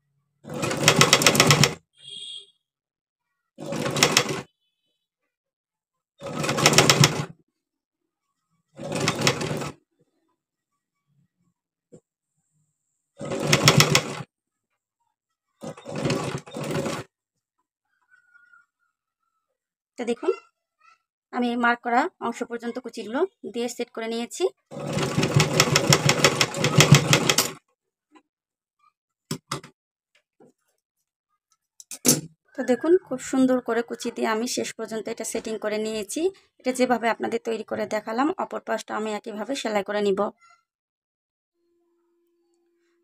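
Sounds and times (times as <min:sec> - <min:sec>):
sewing machine stitching: 0:00.4 - 0:01.8, 0:03.6 - 0:04.5, 0:06.2 - 0:07.4, 0:08.8 - 0:09.8, 0:13.2 - 0:14.3, 0:15.6 - 0:17.1, 0:24.7 - 0:27.6.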